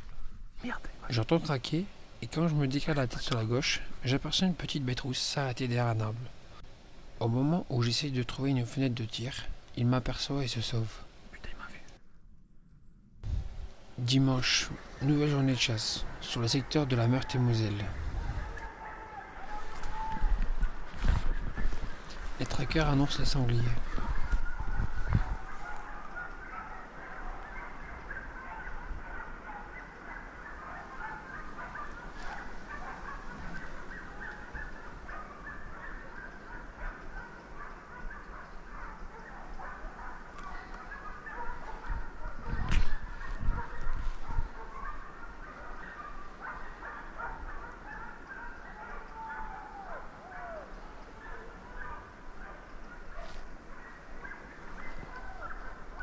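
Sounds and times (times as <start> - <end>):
hounds baying in the distance: 13.8 - 56.0.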